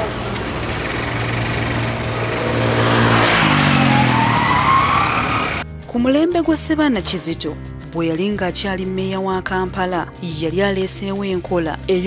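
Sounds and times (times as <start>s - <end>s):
truck diesel engine droning: 0.0s - 5.6s
vehicle passing by: 0.0s - 5.6s.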